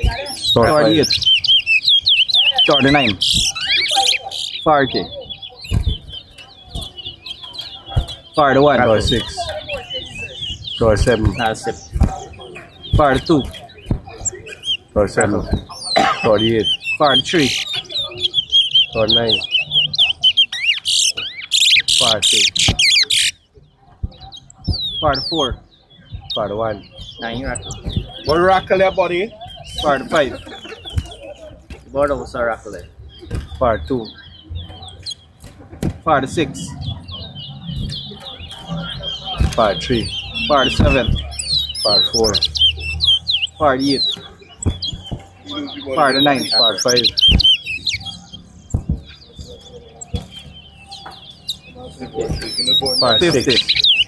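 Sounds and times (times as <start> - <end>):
finch warbling trills: 0.0 - 23.4, 36.7 - 54.0
soft bird chirps: 0.0 - 54.0
dull thumps: 37.8 - 42.6, 44.1 - 45.4, 48.5 - 51.5.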